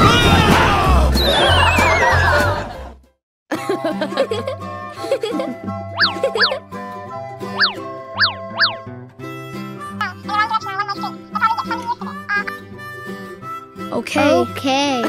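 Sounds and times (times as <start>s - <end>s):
falling-pitch cartoon sound effects: 1.2s - 2.6s, 6.0s - 6.6s
light children's background music: 3.5s - 15.0s
wavering melody: 6.0s - 6.6s, 7.3s - 8.9s.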